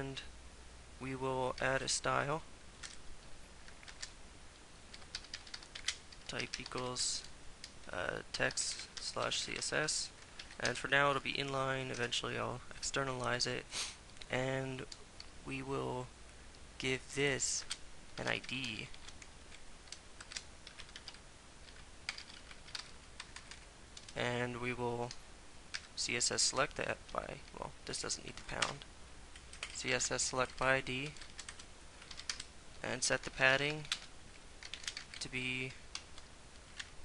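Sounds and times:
computer keyboard typing: 0:03.7 - 0:04.2, 0:04.9 - 0:07.3, 0:10.4 - 0:10.8, 0:19.8 - 0:24.2, 0:25.7 - 0:25.9, 0:29.4 - 0:32.5, 0:33.7 - 0:35.3.

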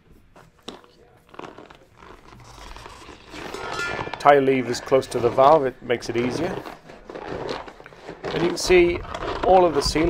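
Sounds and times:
tyre rubber rubbing against rim: 0:00.0 - 0:03.6, 0:04.8 - 0:10.0
tyre crackles and clicks: 0:00.3 - 0:10.0.

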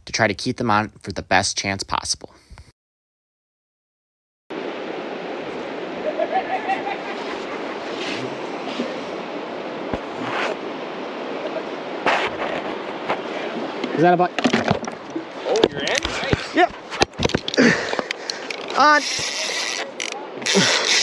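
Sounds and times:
river water rushing: 0:04.5 - 0:21.0
wind on microphone: 0:04.6 - 0:21.0.

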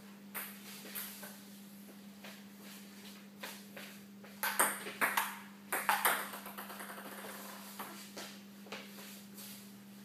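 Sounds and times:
ping-pong ball hits: 0:04.4 - 0:07.5.

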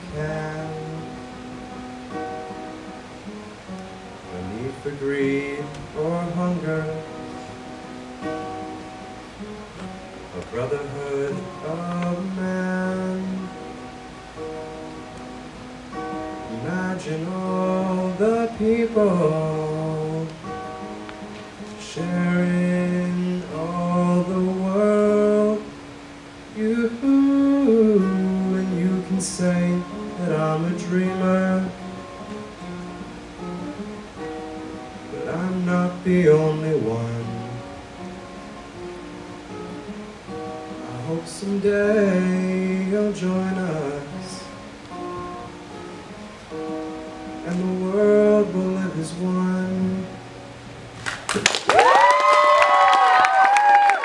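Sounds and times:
man singing wordless notes: 0:00.0 - 0:01.4, 0:04.2 - 0:07.5, 0:10.3 - 0:13.9, 0:16.4 - 0:20.9, 0:21.8 - 0:32.4, 0:35.0 - 0:37.8, 0:40.7 - 0:44.8, 0:47.3 - 0:50.5
acoustic guitar: 0:00.0 - 0:54.0
audience clapping: 0:51.0 - 0:54.0
high whoops: 0:51.4 - 0:54.0.

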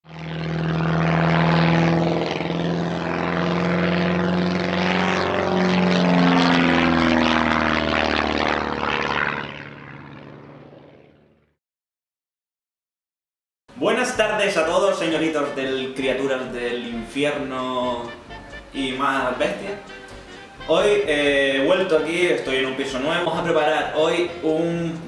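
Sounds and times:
propeller plane engine drone: 0:00.0 - 0:11.6, 0:14.6 - 0:25.0.

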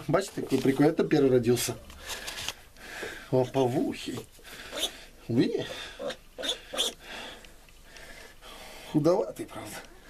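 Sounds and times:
piglet calls: 0:04.7 - 0:05.0, 0:05.7 - 0:07.0.

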